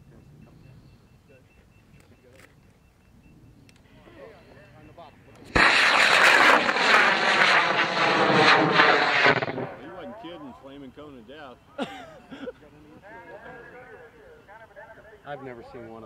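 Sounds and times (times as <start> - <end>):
rocket motor roaring: 5.5 - 10.0.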